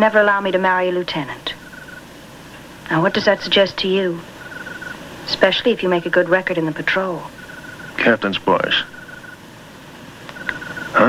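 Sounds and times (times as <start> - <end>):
soft steady hiss: 0.0 - 11.0
cricket chirping: 0.8 - 2.1, 3.0 - 9.6, 10.3 - 11.0.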